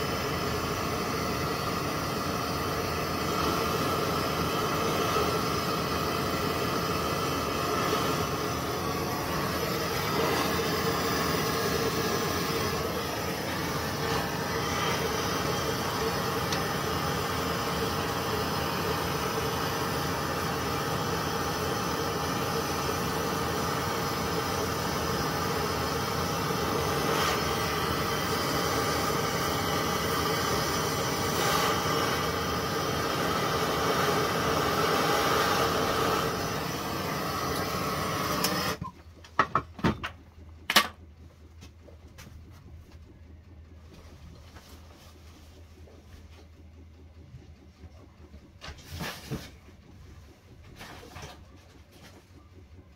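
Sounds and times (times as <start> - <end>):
gas torch hissing: 0.0 - 38.9.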